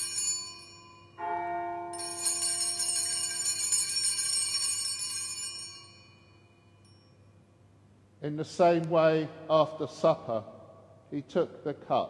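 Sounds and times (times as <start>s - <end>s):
jingling bells: 0.0s - 7.3s.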